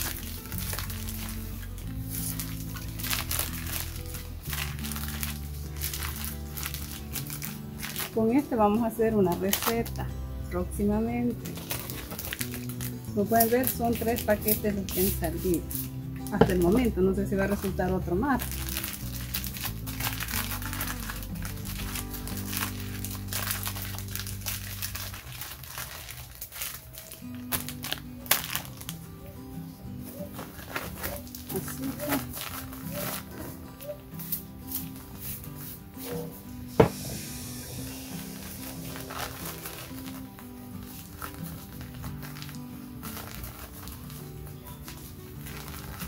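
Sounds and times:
plastic wrappers crinkling: 0.0 - 10.1, 10.8 - 36.5, 37.3 - 46.0
background music with held chords: 0.0 - 46.0.

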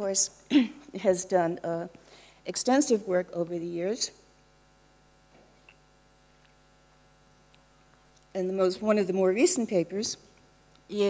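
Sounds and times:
faint electrical mains hum: 0.0 - 11.0.

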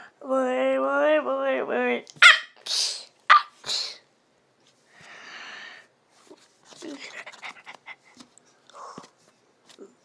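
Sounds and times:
sharp vocal yelp: 2.2 - 4.0.

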